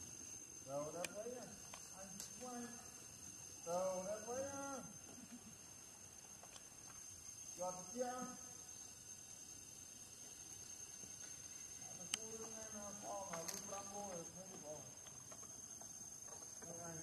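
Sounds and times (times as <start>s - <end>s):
high-pitched insect drone: 0.0s - 17.0s.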